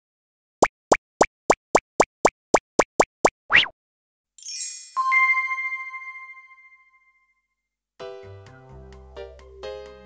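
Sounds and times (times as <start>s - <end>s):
cartoon pops: 0.6s - 3.8s.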